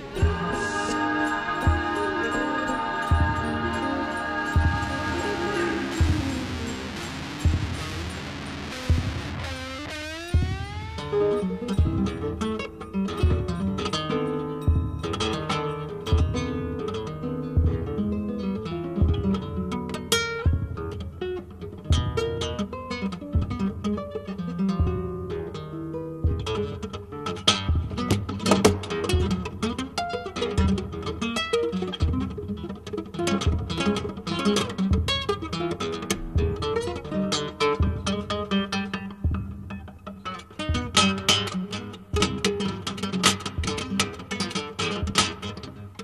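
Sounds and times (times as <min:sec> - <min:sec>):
upward sweeping note: 0:00.0 - 0:11.7
folk-rock band playing: 0:00.0 - 0:13.8.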